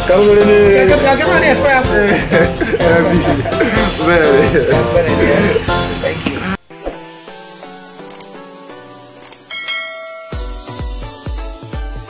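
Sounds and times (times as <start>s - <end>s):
electronic music with kick drum: 0.0s - 6.8s, 9.7s - 12.0s
bell-like chime: 9.5s - 10.7s.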